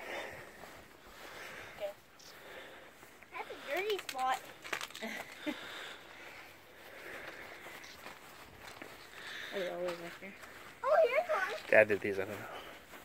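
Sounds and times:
footsteps on bark mulch: 0:02.4 - 0:13.0.

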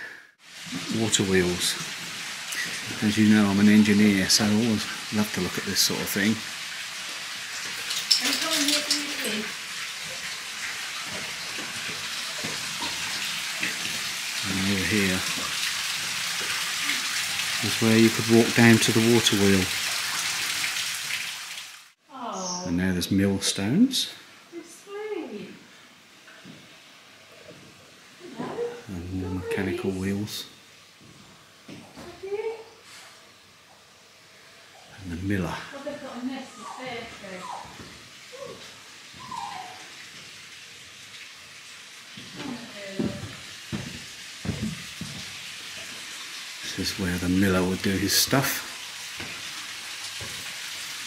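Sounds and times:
steady hiss: 0:00.0 - 0:51.0
water rushing through mill wheel: 0:00.6 - 0:21.3, 0:35.0 - 0:51.0.

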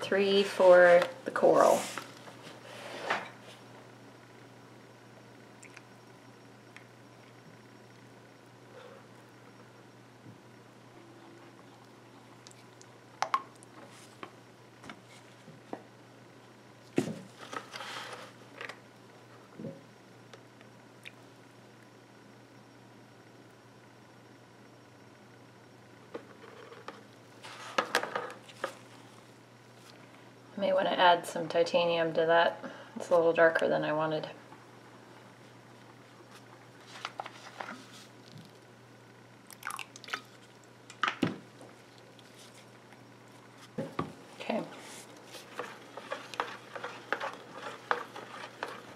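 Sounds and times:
spatula scraping: 0:44.6 - 0:48.9.

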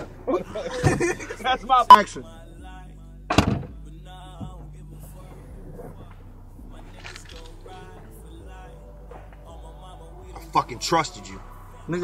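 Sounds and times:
background music: 0:00.0 - 0:12.0
loud thunk: 0:03.3 - 0:03.8.

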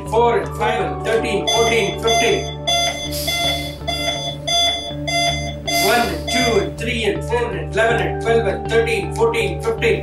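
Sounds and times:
electronic beeping: 0:01.5 - 0:06.8.

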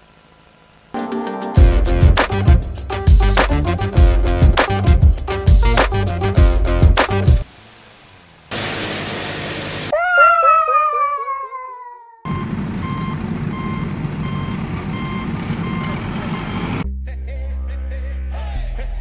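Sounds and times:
heavy vehicle engine rumbling: 0:12.3 - 0:16.8
reverse warning beeper: 0:12.3 - 0:16.8.

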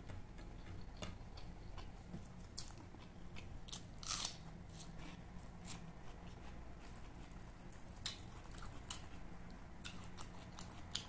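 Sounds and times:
chewing and biting food: 0:00.4 - 0:11.0.

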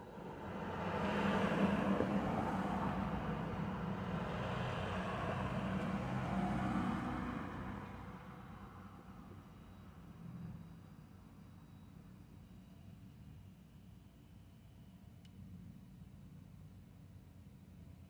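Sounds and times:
vehicle driving past: 0:00.1 - 0:09.0.

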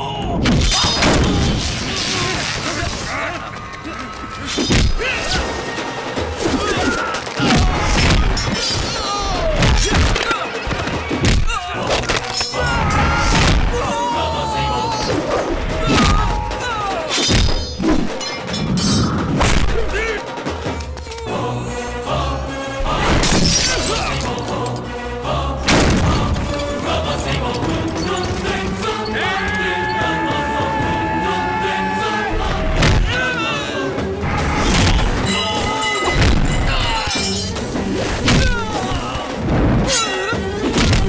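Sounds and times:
dramatic background score: 0:00.0 - 0:41.0
crash and shatter impact: 0:00.5 - 0:03.2.

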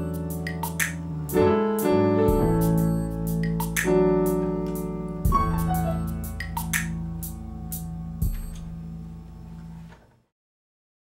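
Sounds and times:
held piano chord: 0:00.0 - 0:09.4.

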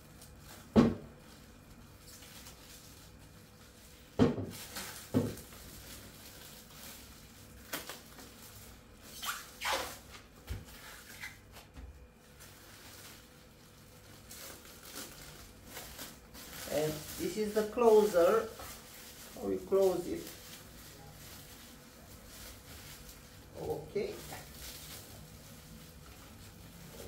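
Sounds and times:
plastic film crinkling: 0:00.0 - 0:27.0.

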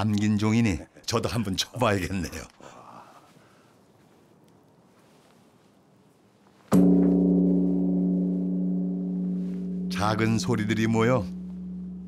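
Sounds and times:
deep bell ringing: 0:06.8 - 0:12.0
wooden striker hitting bronze bell: 0:06.8 - 0:12.0.

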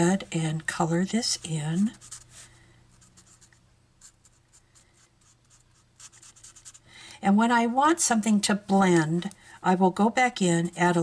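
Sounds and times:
marker scratching on cardstock: 0:01.4 - 0:02.4, 0:03.0 - 0:06.8.

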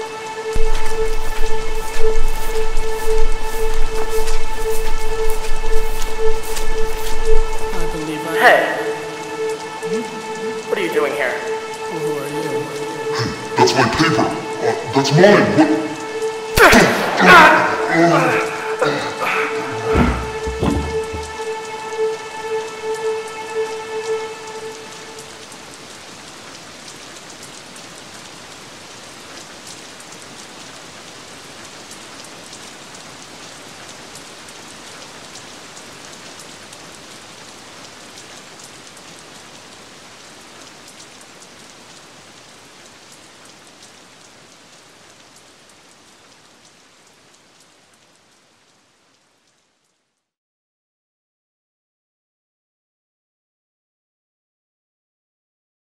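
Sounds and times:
steady rain: 0:00.0 - 0:50.4.

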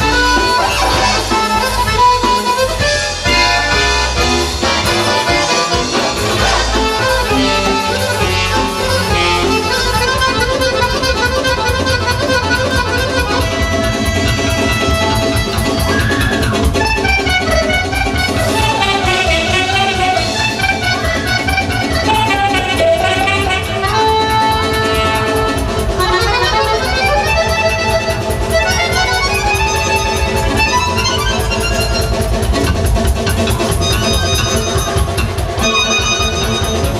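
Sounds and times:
accordion playing folk melody: 0:00.0 - 0:36.9.

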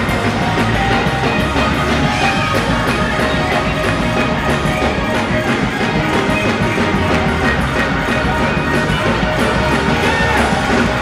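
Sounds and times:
fast driving drum beat: 0:00.0 - 0:11.0
sustained keyboard chords: 0:00.0 - 0:11.0.

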